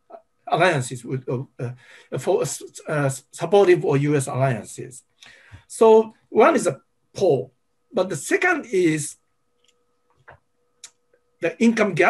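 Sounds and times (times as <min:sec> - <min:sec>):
person speaking: 0:00.0 - 0:09.2, 0:11.4 - 0:12.0
faint steady tone: 0:00.0 - 0:12.0.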